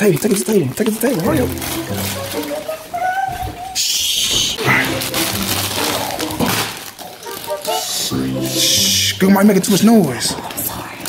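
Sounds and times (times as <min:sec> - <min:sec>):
plastic bag crinkling: 0:00.0 - 0:11.0
background music: 0:01.2 - 0:03.6, 0:04.6 - 0:10.3.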